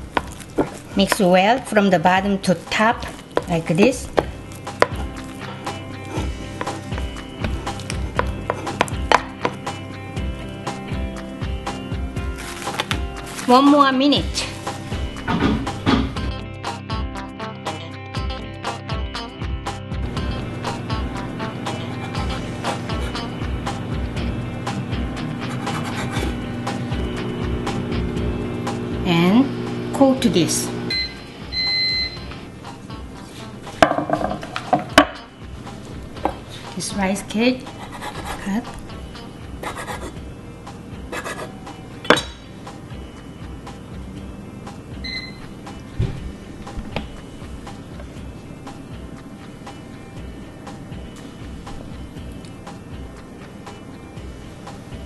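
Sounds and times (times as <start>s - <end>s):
background music: 0.0s - 55.0s
microwave oven beeps: 30.8s - 32.4s, 44.9s - 45.6s.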